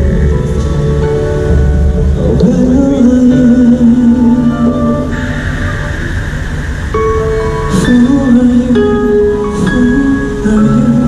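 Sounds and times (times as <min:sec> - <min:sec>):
live instrumental pop music: 0:00.0 - 0:11.0.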